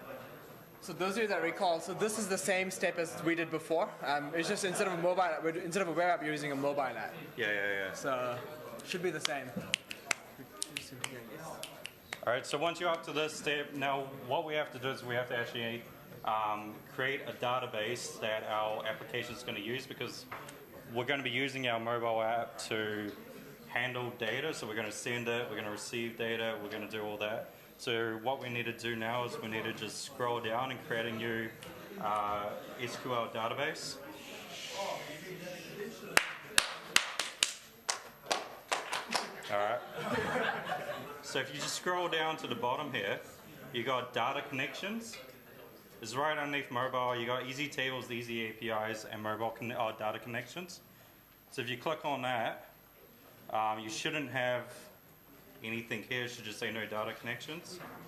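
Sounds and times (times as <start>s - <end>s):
faint murmuring voices: 29.0s - 42.6s.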